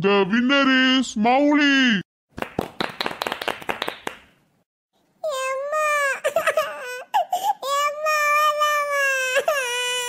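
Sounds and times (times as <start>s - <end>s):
hand clapping: 2.3s - 4.4s
high-pitched crying voice: 5.2s - 10.0s.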